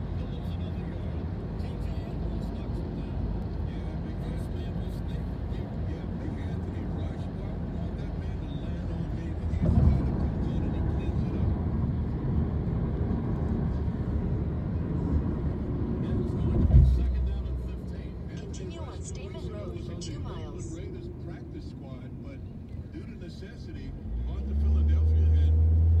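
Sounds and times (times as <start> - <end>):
road and engine rumble: 0.0 - 26.0.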